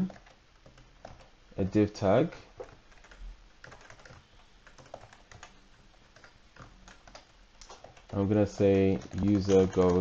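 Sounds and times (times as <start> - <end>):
computer keyboard typing: 0.0 - 1.9, 2.6 - 10.0.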